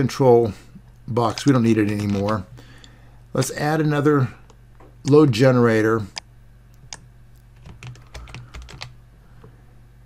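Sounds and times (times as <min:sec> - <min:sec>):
keyboard and mouse clicks: 0:07.6 - 0:09.0.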